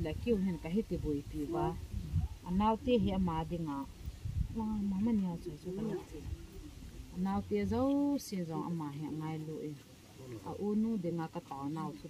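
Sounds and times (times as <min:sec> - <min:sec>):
people talking: 0:00.0 - 0:03.9, 0:04.6 - 0:12.0.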